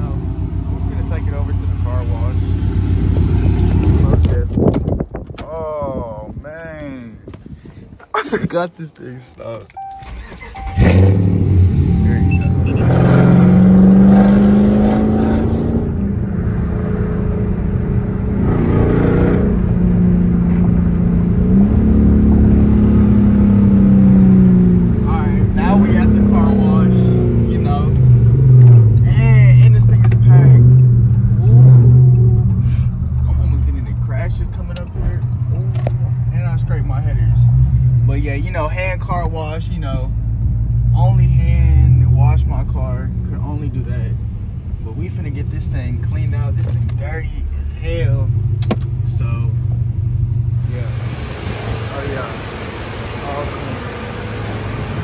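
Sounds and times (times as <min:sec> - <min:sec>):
car engine starting and revving: 0:00.0 - 0:05.6, 0:09.3 - 0:55.0.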